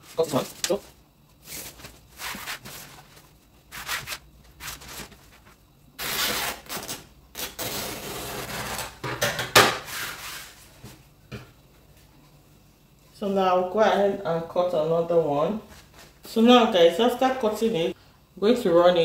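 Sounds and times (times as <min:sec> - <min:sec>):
fabric rustling: 0:00.0 - 0:06.5.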